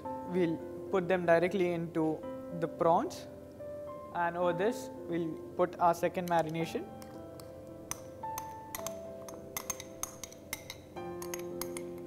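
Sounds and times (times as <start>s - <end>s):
soft background music: 0.0s - 12.0s
metal spoon clinking on glass: 6.2s - 12.0s.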